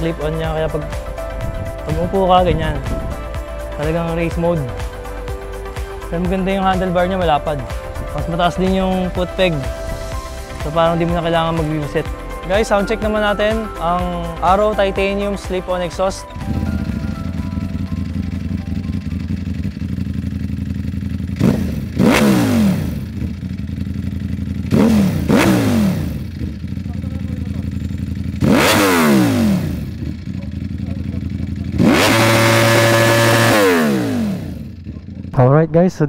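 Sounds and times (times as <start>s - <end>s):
motorcycle engine idling and revving: 0.0s - 35.7s.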